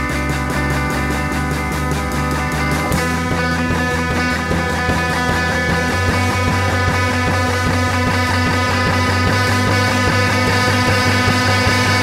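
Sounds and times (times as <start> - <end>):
drums: 0.0 - 12.0
electric guitars: 0.0 - 12.0
steady bass line: 0.0 - 12.0.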